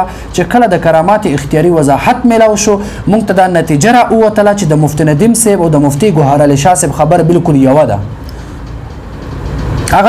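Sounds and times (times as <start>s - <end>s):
man speaking: 0.0s - 8.2s.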